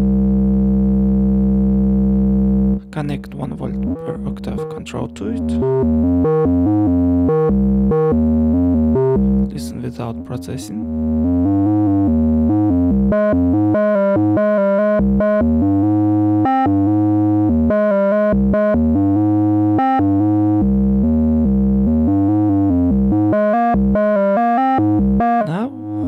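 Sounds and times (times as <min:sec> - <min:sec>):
deep sine-wave bass: 0:00.0 - 0:26.0
short pitched synth notes: 0:02.8 - 0:21.1, 0:22.0 - 0:26.0.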